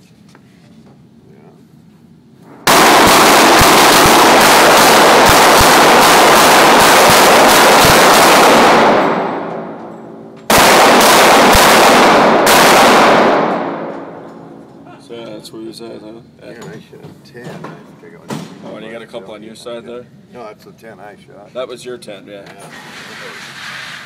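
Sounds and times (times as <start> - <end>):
rapid gunfire: 2.7 - 9.7, 10.5 - 14.0.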